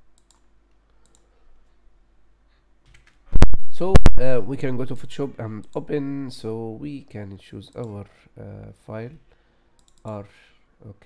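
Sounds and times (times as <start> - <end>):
computer mouse clicks: 0.1 - 1.3, 9.8 - 10.2
man speaking: 3.7 - 9.2.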